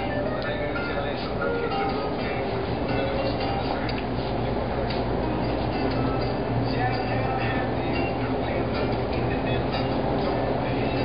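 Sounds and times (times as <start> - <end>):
steady rumbling with low hum: 0.0 - 11.0.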